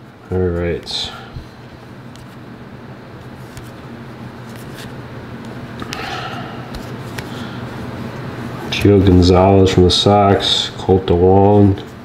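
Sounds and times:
steady low hum: 0:00.0 - 0:12.0
soft rustle of cards: 0:00.3 - 0:02.6, 0:03.2 - 0:12.0.

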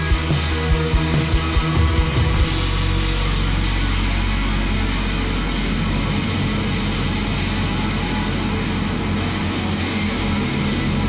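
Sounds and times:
live synth-rock band playing: 0:00.0 - 0:11.0.

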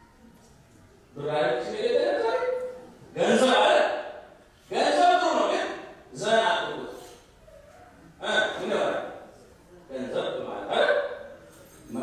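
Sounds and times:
man preaching into a microphone: 0:01.2 - 0:07.0, 0:08.2 - 0:09.2, 0:09.9 - 0:11.3.

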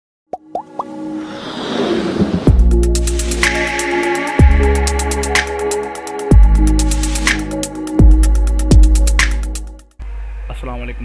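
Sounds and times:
quick pops rising in pitch: 0:00.3 - 0:01.0
whoosh: 0:01.2 - 0:03.6.

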